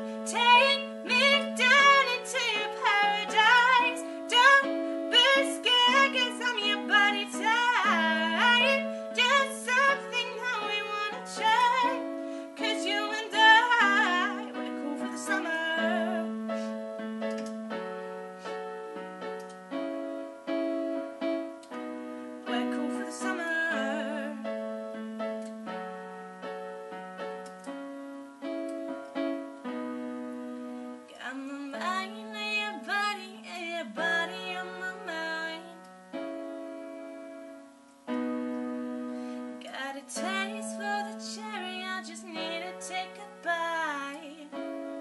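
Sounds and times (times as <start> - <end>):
piano playing chords: 0.0 - 45.0.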